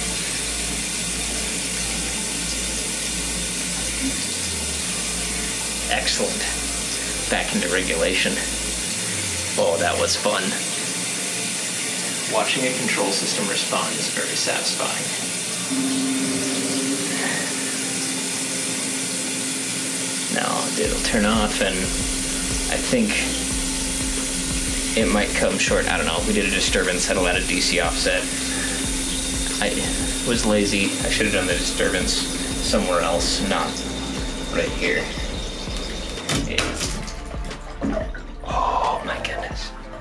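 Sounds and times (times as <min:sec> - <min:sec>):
shower water running: 0:00.0 - 0:40.0
low hum: 0:15.6 - 0:40.0.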